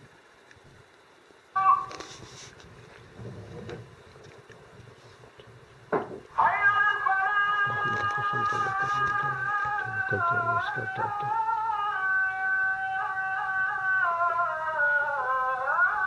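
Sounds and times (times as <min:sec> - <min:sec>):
person singing long note: 0:06.4 - 0:16.0.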